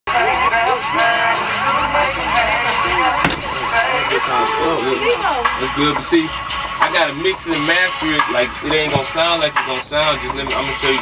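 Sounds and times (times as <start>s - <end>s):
indistinct chatter: 0.1s - 6.8s
steady low rumble: 2.0s - 7.5s
sharp knock: 3.2s - 3.6s.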